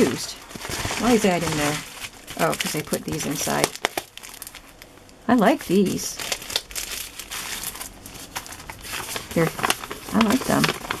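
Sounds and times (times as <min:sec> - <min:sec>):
paper envelopes crinkling: 0:00.0 - 0:11.0.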